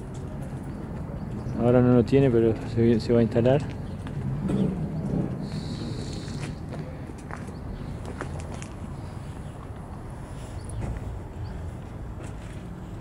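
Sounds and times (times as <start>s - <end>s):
faint distant voices: 5.4s - 7.9s.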